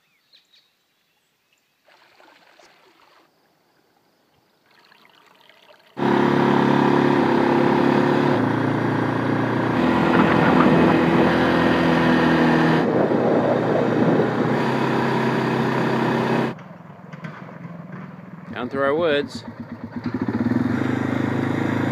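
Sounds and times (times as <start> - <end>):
atv engine running: 6.0 - 21.9.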